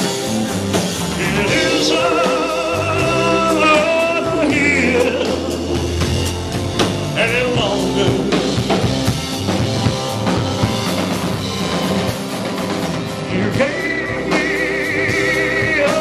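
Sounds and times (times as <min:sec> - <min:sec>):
drum kit hits: 0:00.0 - 0:16.0
rock band playing a ballad: 0:00.0 - 0:16.0.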